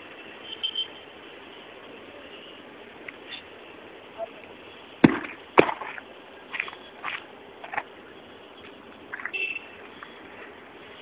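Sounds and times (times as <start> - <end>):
stone slammed onto pavement: 5.0 - 6.0.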